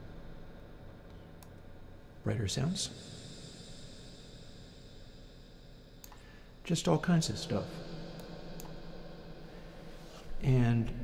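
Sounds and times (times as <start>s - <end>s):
low reverb drone and hiss: 0.0s - 11.0s.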